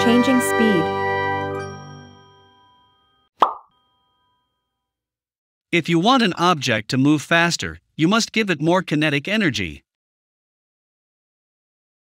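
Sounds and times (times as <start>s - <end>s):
short pop with ringing ding: 3.4s - 3.9s.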